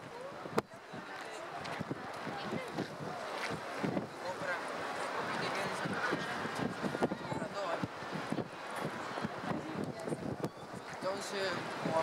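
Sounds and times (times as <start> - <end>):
murmur of voices: 0.0 - 12.0
wind noise on microphone: 0.0 - 12.0.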